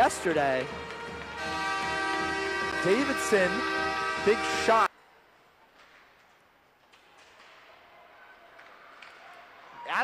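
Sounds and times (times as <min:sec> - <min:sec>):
low arena noise: 0:00.0 - 0:10.0
sticks and puck clicking: 0:08.5 - 0:09.4.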